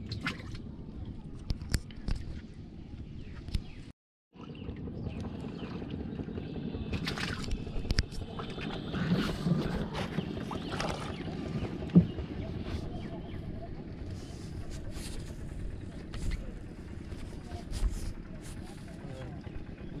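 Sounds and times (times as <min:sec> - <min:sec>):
wind: 0:00.0 - 0:20.0.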